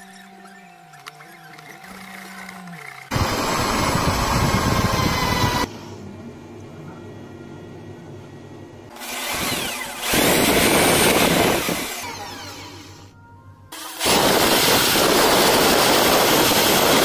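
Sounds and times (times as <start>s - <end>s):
electric drill polishing metal: 0.0s - 5.7s, 8.9s - 13.1s, 13.8s - 17.0s.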